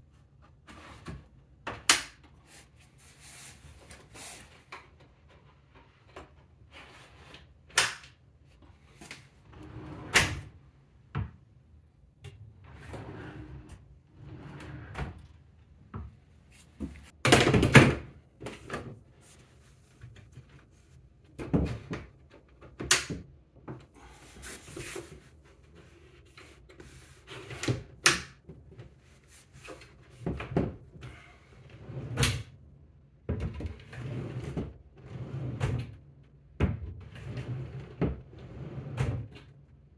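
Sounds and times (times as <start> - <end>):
drawer sliding scrapes: 9.4 - 10.5, 12.6 - 15.2, 24.0 - 28.0, 31.0 - 32.4, 33.7 - 35.9, 37.0 - 39.4.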